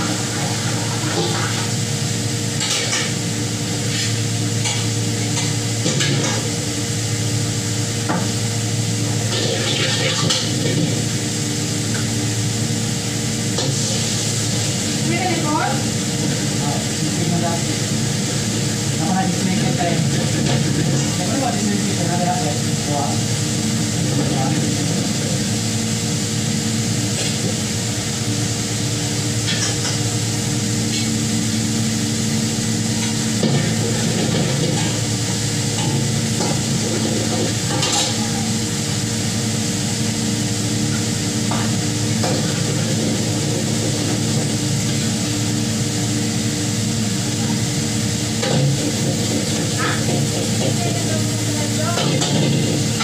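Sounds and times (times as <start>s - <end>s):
food sizzling in hot oil: 0.0s - 53.0s.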